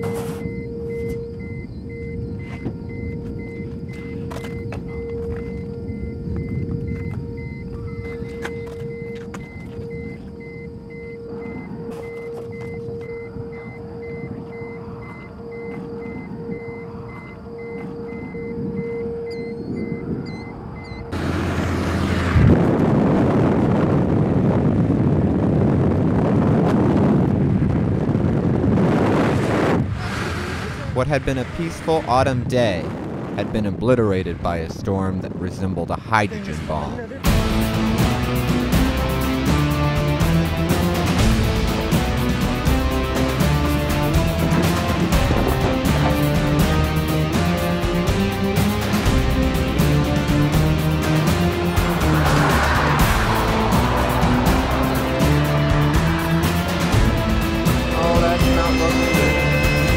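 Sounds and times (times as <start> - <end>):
pulsing electronic tone: 0.0 - 21.2, 37.3 - 59.9
car engine low rumble: 0.0 - 33.6, 36.3 - 59.9
wind and road noise: 0.0 - 59.9.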